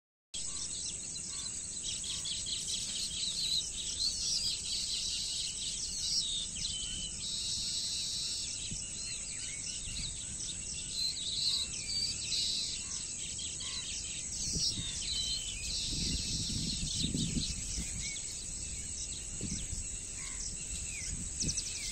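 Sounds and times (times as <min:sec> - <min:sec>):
birds chirping and trilling: 0:00.4 - 0:21.9
high-pitched insect drone: 0:00.5 - 0:21.9.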